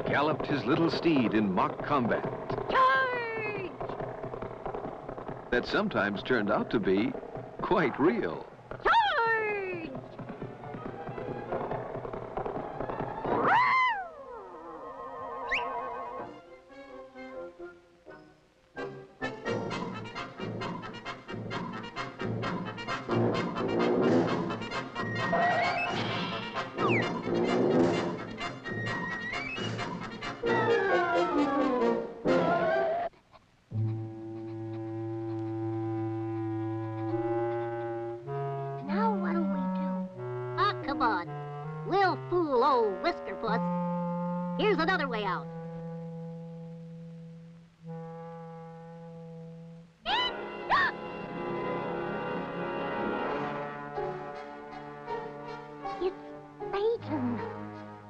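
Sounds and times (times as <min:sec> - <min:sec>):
brass cartoon film score: 0:14.8 - 0:58.0.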